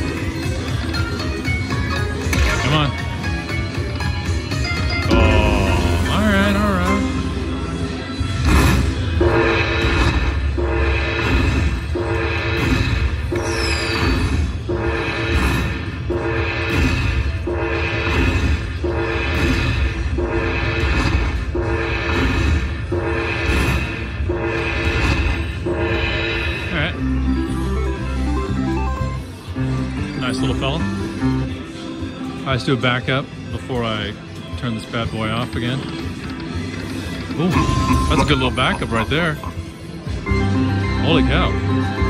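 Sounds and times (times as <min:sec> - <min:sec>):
slot machine chiming music: 0:00.0 - 0:08.1, 0:09.0 - 0:31.7, 0:33.8 - 0:42.0.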